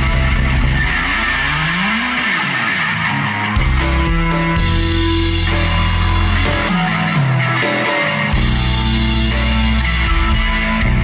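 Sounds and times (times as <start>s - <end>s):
bass guitar: 0.0s - 11.0s
drums: 0.0s - 11.0s
electric guitar with sweeping effect: 0.0s - 11.0s.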